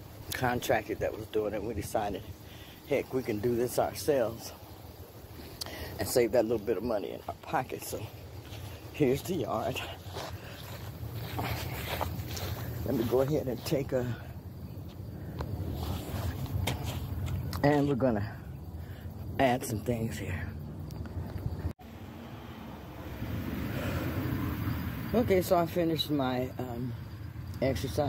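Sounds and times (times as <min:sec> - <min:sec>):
footsteps on grass: 0:07.2 - 0:13.8, 0:14.8 - 0:17.6
vehicle passing: 0:20.0 - 0:28.0.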